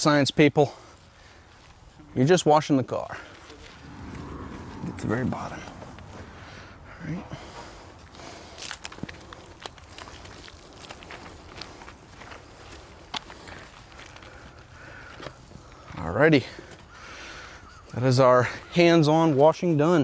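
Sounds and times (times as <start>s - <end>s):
footsteps on wet pavement: 7.5s - 15.8s.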